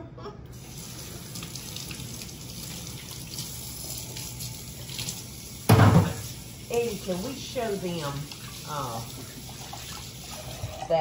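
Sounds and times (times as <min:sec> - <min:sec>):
faucet running into sink: 0:00.5 - 0:11.0.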